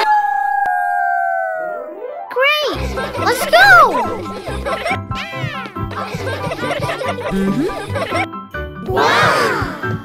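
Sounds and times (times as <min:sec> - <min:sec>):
cartoon background music: 0:01.8 - 0:10.0.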